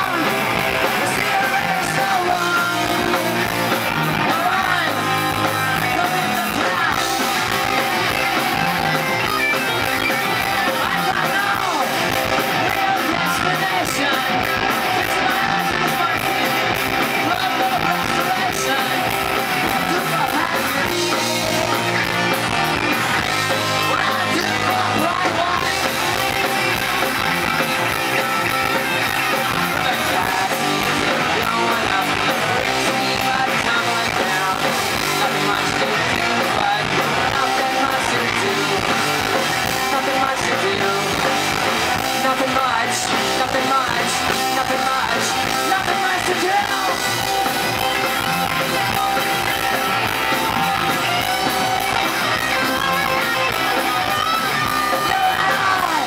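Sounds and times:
bass guitar: 0.0s - 56.0s
electric guitars: 0.0s - 56.0s
live rock band playing: 0.0s - 56.0s
man singing: 0.0s - 56.0s.

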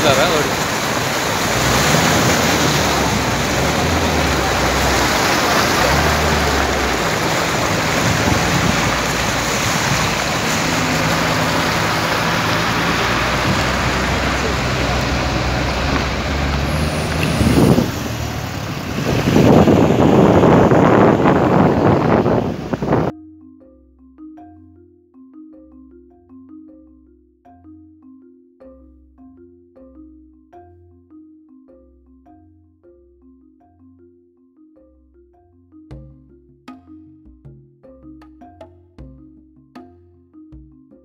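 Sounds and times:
floodwater rushing: 0.0s - 23.1s
vehicle engine running: 0.0s - 23.1s.

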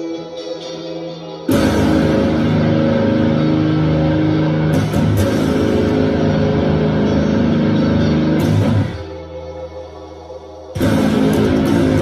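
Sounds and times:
electric guitar metal chords: 0.0s - 12.0s.

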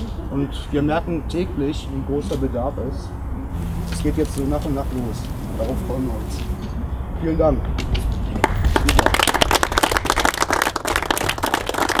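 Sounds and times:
crowd applauding: 8.4s - 12.0s.

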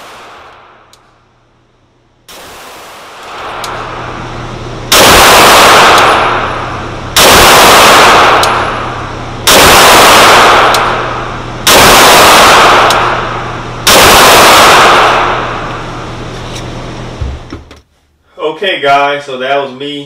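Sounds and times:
pistol shots ringing indoors: 4.9s - 15.9s.

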